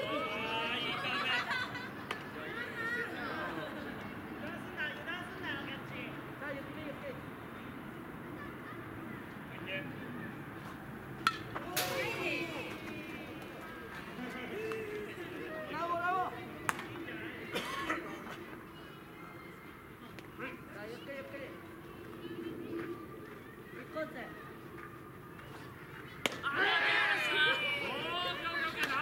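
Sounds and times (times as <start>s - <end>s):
people shouting: 26.4s - 29.0s.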